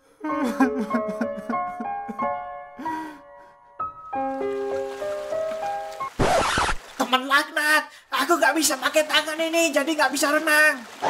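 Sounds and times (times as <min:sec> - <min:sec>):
cartoon whoosh effect: 0:06.2 - 0:06.8.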